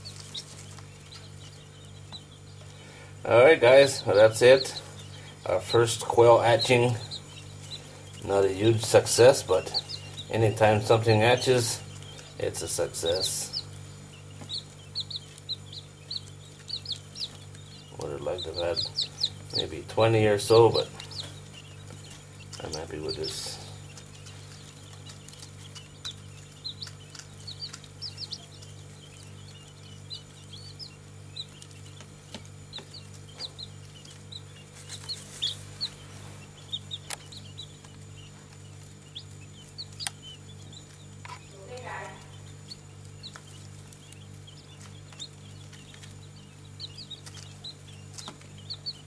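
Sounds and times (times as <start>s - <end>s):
chicks peeping: 0.0s - 49.0s
steady low hum: 0.0s - 49.0s.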